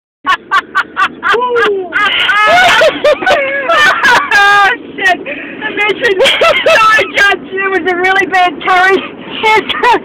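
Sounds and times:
car engine and road noise: 0:00.2 - 0:10.0
voices talking: 0:01.1 - 0:10.0.

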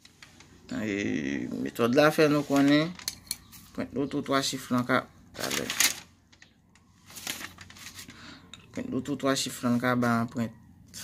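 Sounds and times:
rustling handling noise: 0:00.0 - 0:00.8, 0:01.4 - 0:03.9, 0:04.6 - 0:08.8.

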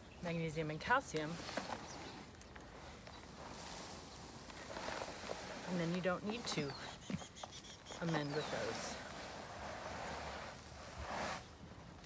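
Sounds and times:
soil pouring onto dirt: 0:01.6 - 0:06.8.

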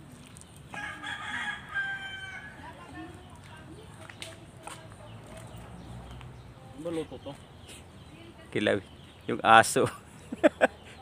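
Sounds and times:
rooster crowing: 0:00.7 - 0:02.6.

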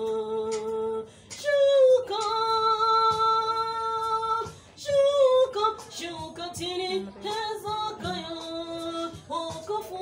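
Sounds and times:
woman singing gospel song: 0:00.0 - 0:10.0.

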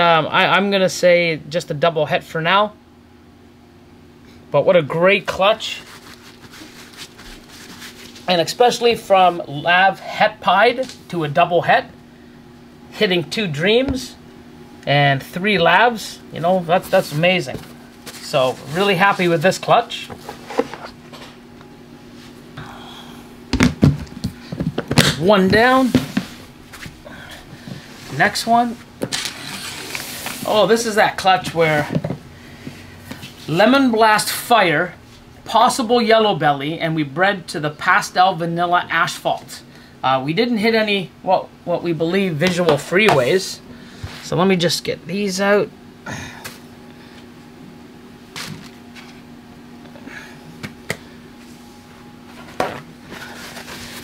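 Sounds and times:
low hum: 0:11.8 - 0:31.0
plastic tubs knocking and rustling: 0:23.5 - 0:26.4, 0:31.8 - 0:32.2.

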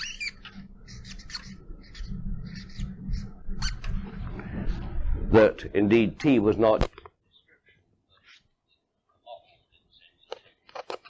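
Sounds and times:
squeaky writing on a board: 0:00.0 - 0:03.8
low steady hum: 0:00.0 - 0:07.0.

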